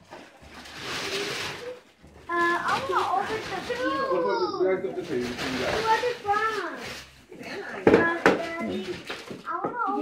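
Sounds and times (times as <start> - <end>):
wrapping paper rustling: 0.0 - 10.0.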